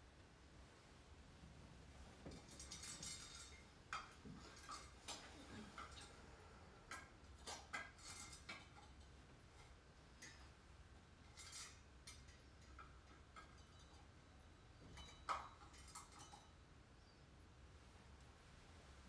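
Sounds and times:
low room hum: 0.0s - 19.0s
small clicks and rustles: 1.4s - 16.6s.

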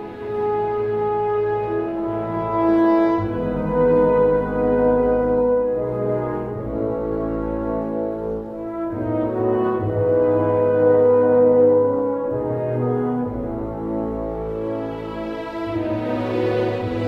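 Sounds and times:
french horns playing slow melody: 0.0s - 17.0s.

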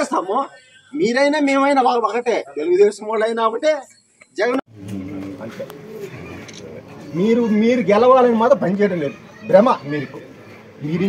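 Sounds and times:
background chatter: 0.0s - 11.0s
man talking: 0.0s - 11.0s.

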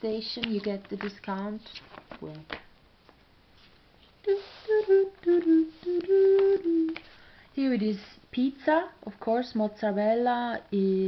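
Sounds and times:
magazine pages turning: 0.4s - 4.2s
person humming a tune: 4.2s - 7.1s.

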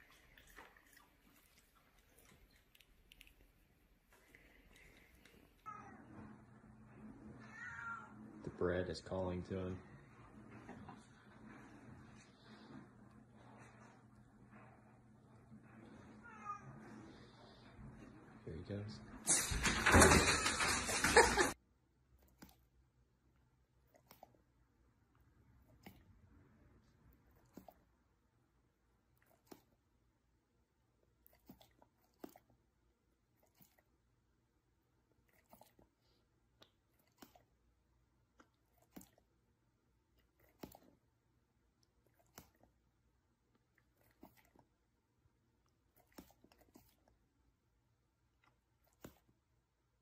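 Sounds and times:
wet tongue and lip clicks: 0.0s - 5.6s, 35.2s - 36.0s, 36.6s - 37.6s, 38.3s - 39.3s, 41.8s - 42.8s
cat meowing: 7.4s - 8.2s.

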